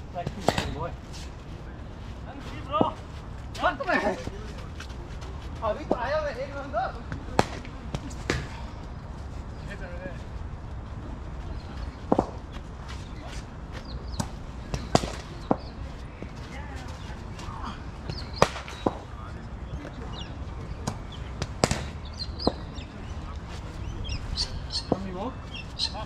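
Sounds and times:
faint distant voices: 0.1s - 26.0s.

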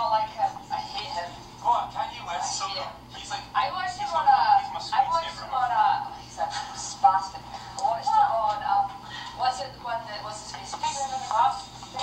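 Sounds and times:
thin tinny talking voices: 0.0s - 12.0s.

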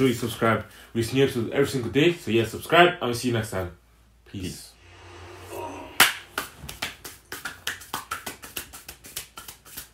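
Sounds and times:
people clapping hands: 6.0s - 9.9s.

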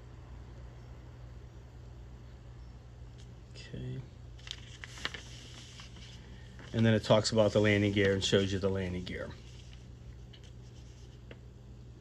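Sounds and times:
low steady hum: 0.0s - 12.0s
paper rustling: 4.4s - 11.4s.

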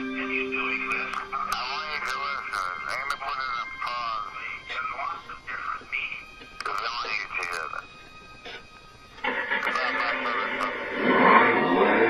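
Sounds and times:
broadcast voice: 0.0s - 7.9s, 9.3s - 11.0s
broadcast music: 0.0s - 12.0s.

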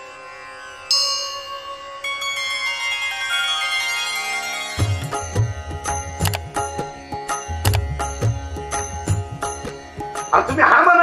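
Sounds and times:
bell-like chimes: 0.6s - 10.5s.

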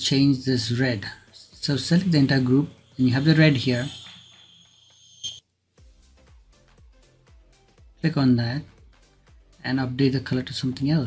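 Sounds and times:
steady high-pitched whine: 0.0s - 5.4s
faint background music with low beat: 0.0s - 11.0s.

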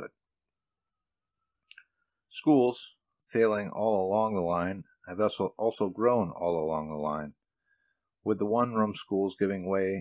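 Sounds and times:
narrator speaking: 8.2s - 10.0s.

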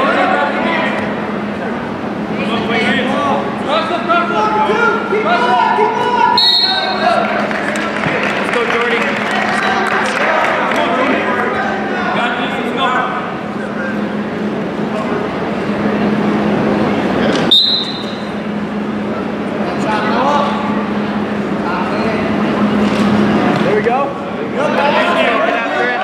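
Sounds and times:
steady low hum: 0.0s - 25.2s
referee whistle blast: 6.4s - 7.0s, 17.5s - 18.4s
spectators and coaches shouting: 24.6s - 26.0s.

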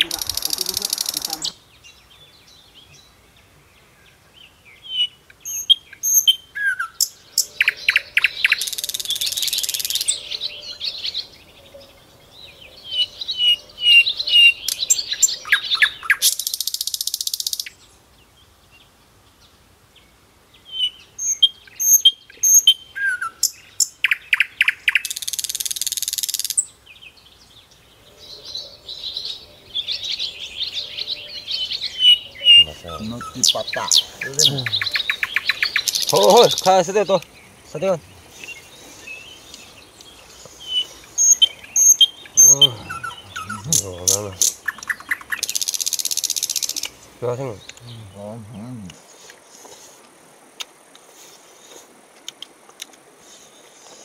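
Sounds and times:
birds chirping: 0.0s - 54.0s
man's voice: 32.5s - 34.9s, 36.1s - 38.2s, 42.4s - 44.5s, 47.2s - 49.0s.

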